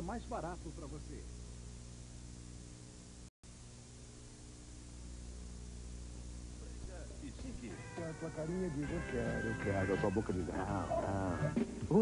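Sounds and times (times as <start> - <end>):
videotape hum and hiss: 0.0 - 12.0.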